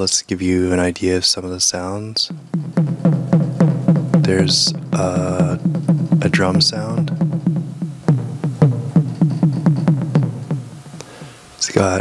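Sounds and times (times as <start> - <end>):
synthesized pitched drum hits: 2.3 - 11.0.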